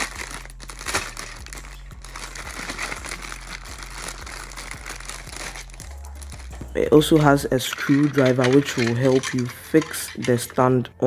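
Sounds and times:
plastic bag crinkling: 0.0 - 10.5.

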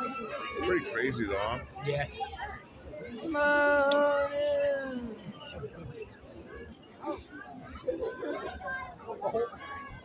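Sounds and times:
crowd chatter: 0.0 - 10.0
children's voices: 1.6 - 5.2, 6.4 - 10.0.

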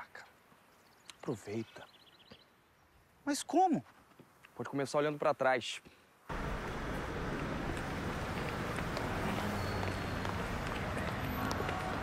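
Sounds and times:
city street noise: 6.3 - 12.0
footsteps: 6.3 - 12.0.

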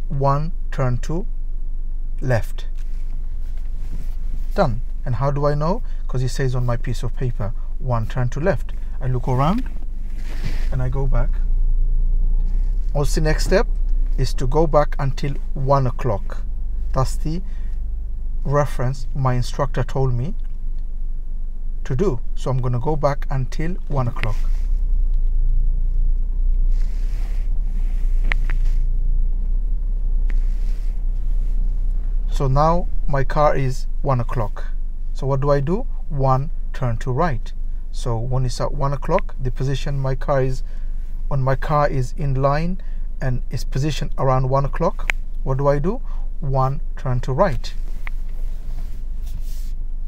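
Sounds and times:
car engine rumble from inside: 0.0 - 50.0.

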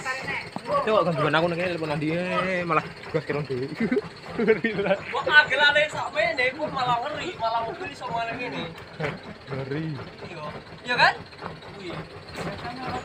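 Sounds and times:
men talking and calling out: 0.0 - 13.0.

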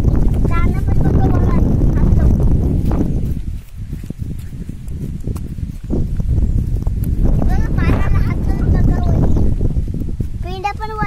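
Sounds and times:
low rumble: 0.0 - 10.5
footsteps on soil: 0.0 - 11.0
person speaking: 0.4 - 3.7, 7.1 - 9.6.

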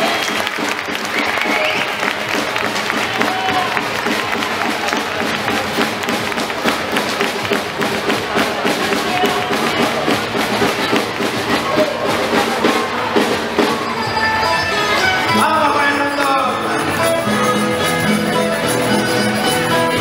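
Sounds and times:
crowd voices: 0.0 - 20.0
folk dance music: 0.0 - 20.0.

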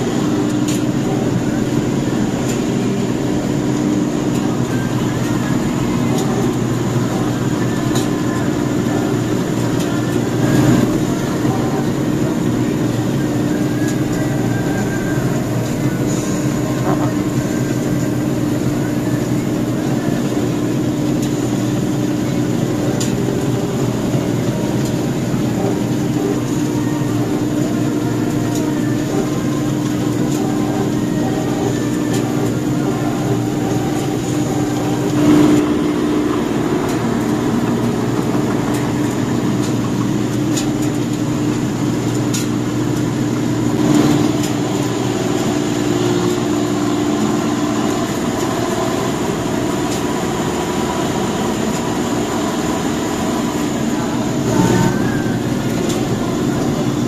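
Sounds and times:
combine harvester engine drone: 0.0 - 57.0.

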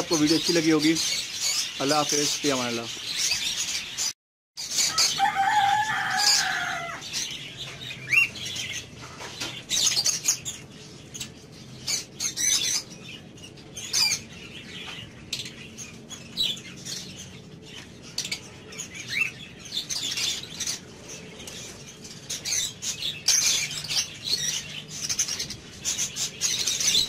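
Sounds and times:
lovebirds chirping and chattering: 0.0 - 27.0.

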